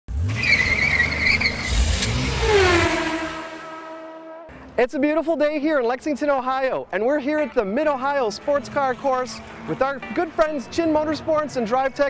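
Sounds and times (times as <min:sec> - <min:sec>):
tires squealing: 0:00.1 - 0:04.5
engine noise: 0:00.1 - 0:04.7
sharp hit: 0:01.7 - 0:04.5
falling tone into steady hum: 0:02.5 - 0:04.5.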